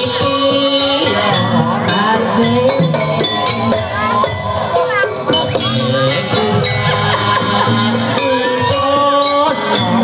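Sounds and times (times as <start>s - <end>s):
man singing into a microphone: 0.0s - 4.1s, 5.5s - 10.0s
loud live music over sound system: 0.0s - 10.0s.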